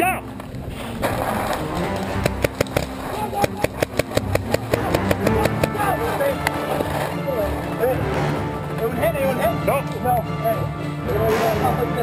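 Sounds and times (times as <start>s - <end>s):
paintball markers firing: 1.8s - 5.8s
people shouting: 2.9s - 4.0s, 4.6s - 11.8s.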